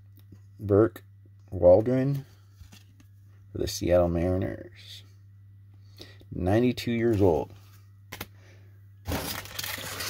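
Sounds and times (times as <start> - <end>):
foil wrapper crinkling: 9.1 - 10.0.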